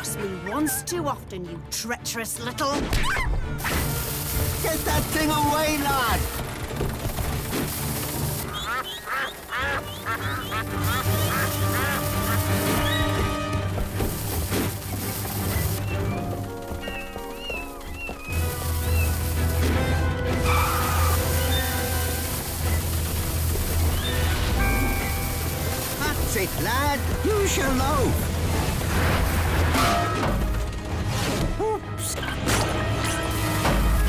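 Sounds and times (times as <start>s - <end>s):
film score music: 0.0s - 34.0s
ducks quacking: 8.4s - 13.4s.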